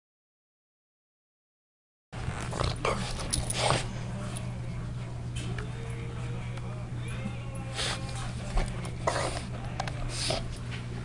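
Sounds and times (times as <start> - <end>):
steady low hum: 2.2 - 11.0.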